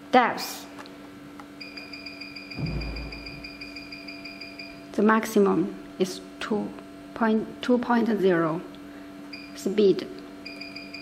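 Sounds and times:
high control panel beep: 1.6 - 4.8, 10.4 - 11.0
low steady hum: 1.6 - 10.3
brief low rumble: 2.6 - 3.6.

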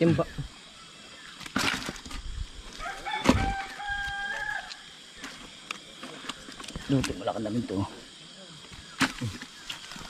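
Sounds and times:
rooster crowing: 2.8 - 4.8.

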